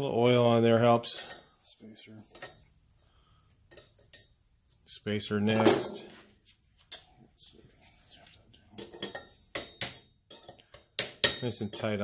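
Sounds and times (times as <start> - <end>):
metal-on-metal clinks: 8.8 - 12.0.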